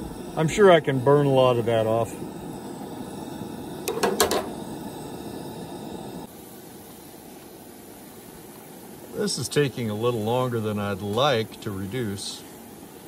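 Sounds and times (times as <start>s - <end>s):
vegetables simmering in a frying pan: 0.0s - 13.0s.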